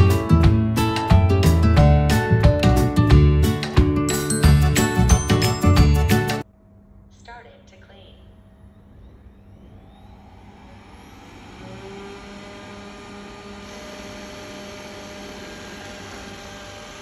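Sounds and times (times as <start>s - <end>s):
robot vacuum fan whine: 8.6s - 17.0s.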